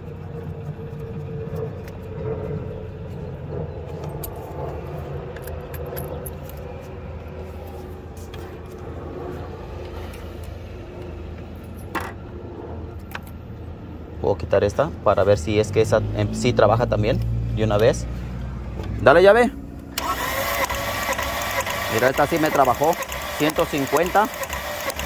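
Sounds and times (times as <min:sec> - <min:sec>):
low engine hum: 0:00.0 - 0:21.9.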